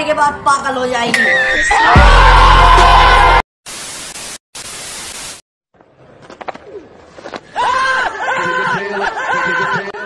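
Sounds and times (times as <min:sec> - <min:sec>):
tv static hiss: 0:03.7 - 0:05.4.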